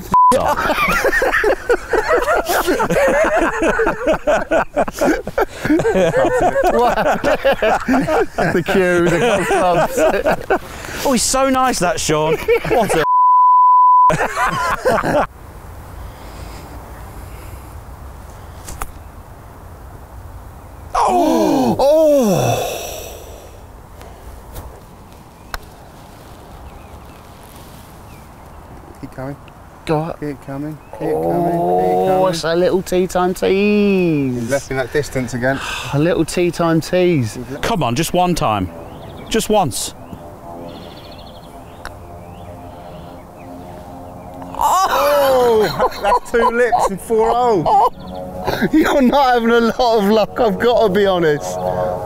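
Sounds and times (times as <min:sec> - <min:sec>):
crowd groaning: 0:21.0 - 0:23.6, 0:31.0 - 0:32.5
crowd ooh: 0:44.6 - 0:45.8.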